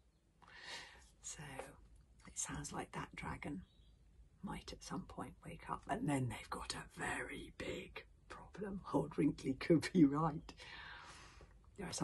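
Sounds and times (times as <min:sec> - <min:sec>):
woman speaking quietly: 0:01.2 - 0:03.6, 0:04.4 - 0:10.5, 0:11.8 - 0:12.0.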